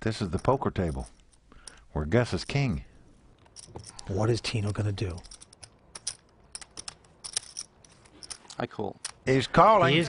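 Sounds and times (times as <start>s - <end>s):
poker chips clicking together: 3.4s - 9.2s.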